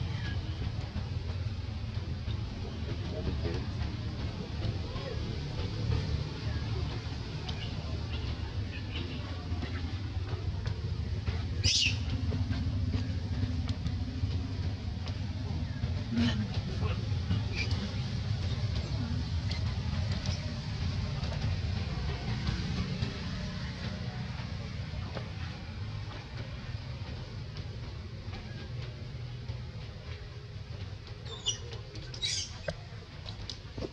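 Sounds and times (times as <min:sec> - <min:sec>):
low rumble of outdoor background: 0:00.0 - 0:33.9
macaques squeaking: 0:11.6 - 0:12.1, 0:31.3 - 0:32.8.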